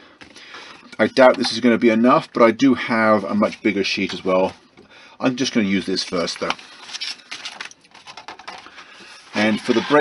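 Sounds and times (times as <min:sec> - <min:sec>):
plastic sheets rustling: 0:05.3 - 0:10.0.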